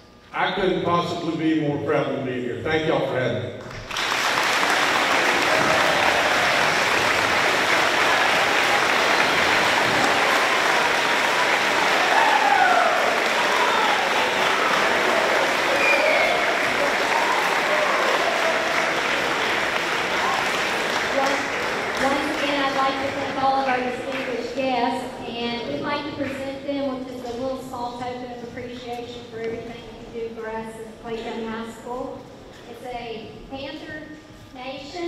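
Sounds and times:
audience applauding: 3.7 - 24.6.

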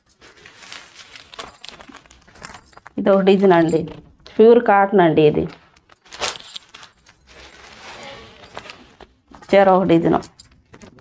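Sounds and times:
bangles clinking: 0.0 - 4.2, 5.7 - 11.0
cloth rustling: 0.0 - 4.2, 5.6 - 9.8.

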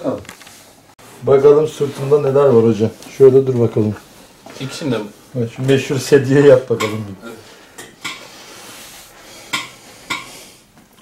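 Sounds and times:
cloth rustling: 0.0 - 6.5.

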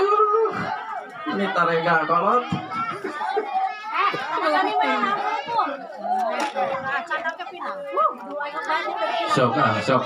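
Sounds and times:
crowd chatter: 0.0 - 10.0
people calling out: 0.0 - 10.0.

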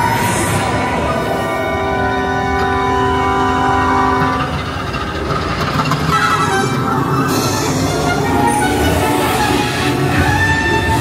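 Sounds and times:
ride vehicle low rumble: 0.0 - 11.0
rough clatter: 4.2 - 8.2.

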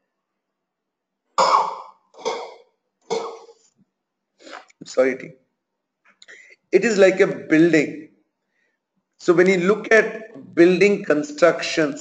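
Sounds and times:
man coughing: 1.4 - 3.5.

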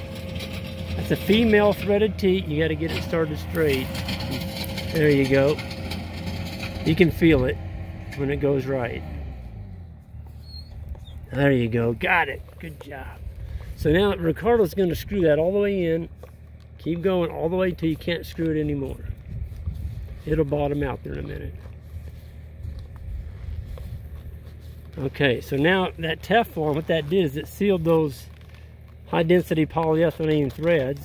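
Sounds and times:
low steady rumble: 0.0 - 31.0
plastic coupler squeaking and scraping: 10.1 - 13.7.

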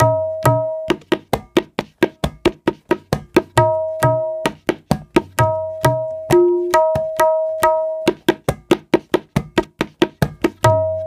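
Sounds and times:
tabla dry damped strokes: 0.0 - 11.0
tabla ringing open strokes: 0.0 - 11.0.

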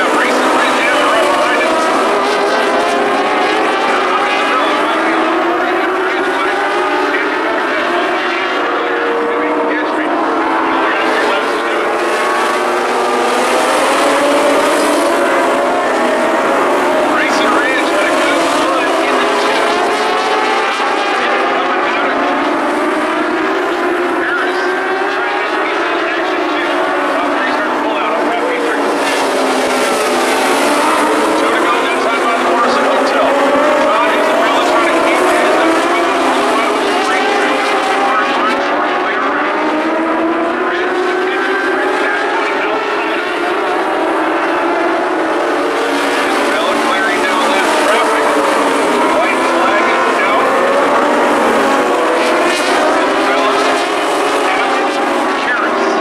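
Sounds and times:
race car engines passing by: 0.0 - 56.0.

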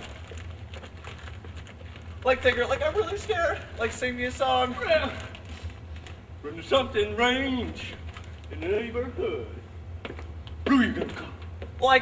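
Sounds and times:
faint clicks and rustles: 0.0 - 6.4, 7.7 - 8.8
low steady hum: 0.0 - 12.0.

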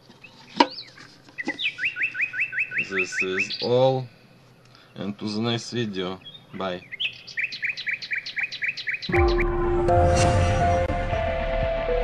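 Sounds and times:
bird chirping rapidly: 0.2 - 4.0, 5.8 - 9.6.

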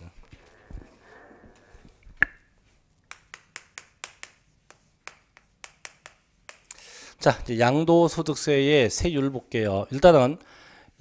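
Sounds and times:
chalk tapping on chalkboard: 3.1 - 6.8.

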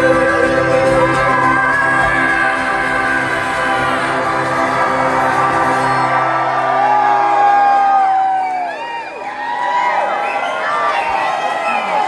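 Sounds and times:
live band song ending: 0.0 - 7.8
audience whooping and cheering: 0.0 - 12.0.

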